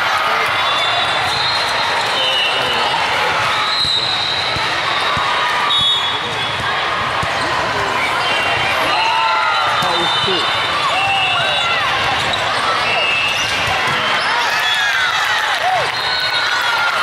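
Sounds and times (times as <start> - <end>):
crowd of voices: 0.0 - 17.0
volleyballs bouncing and hit: 3.3 - 8.8, 9.6 - 14.3.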